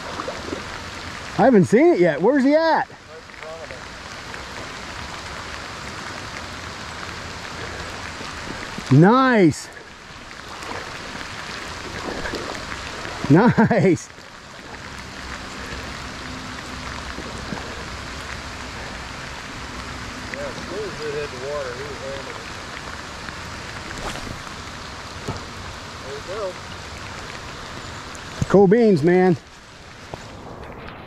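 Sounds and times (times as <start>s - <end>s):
heavy rain on river: 0.0s - 31.0s.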